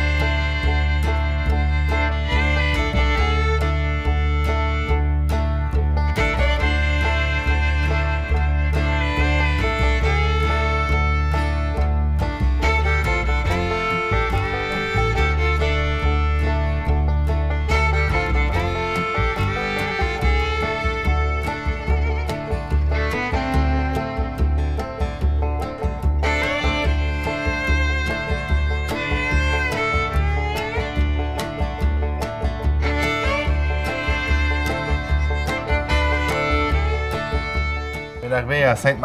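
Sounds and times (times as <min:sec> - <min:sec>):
fiddle tune over guitar: 0:00.0 - 0:39.0
steady bass and beat: 0:00.0 - 0:39.0.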